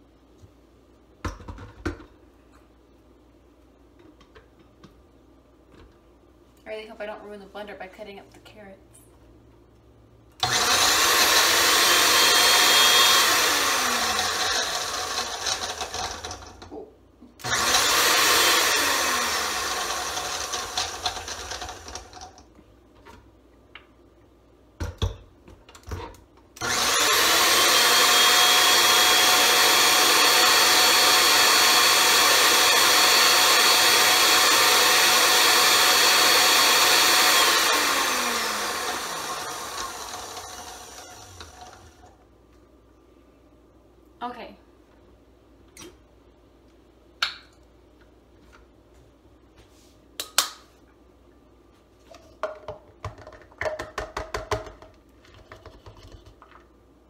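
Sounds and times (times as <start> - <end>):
blender motor spinning down: 10.4 - 16.5, 17.4 - 22.2, 26.6 - 42.1
blender grinding: 10.4 - 16.7, 17.4 - 22.4, 26.6 - 42.2.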